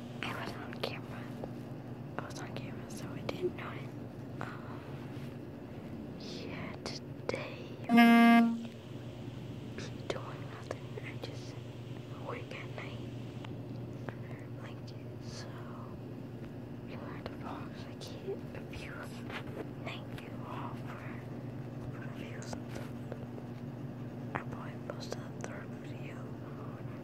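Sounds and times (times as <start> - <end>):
steady low hum: 0.0 - 27.0
loud horn-like honk: 7.9 - 8.7.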